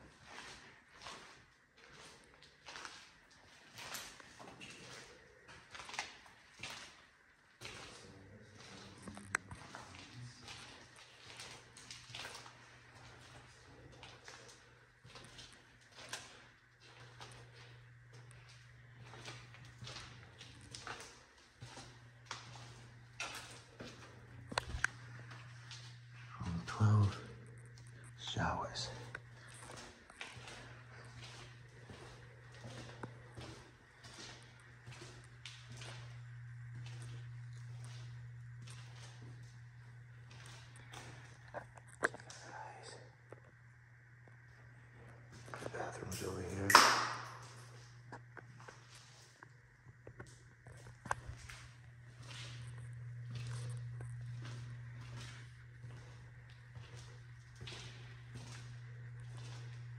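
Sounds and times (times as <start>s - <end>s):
footsteps on debris: 0.0s - 42.7s, 45.2s - 59.9s
steady low hum: 0.0s - 59.9s.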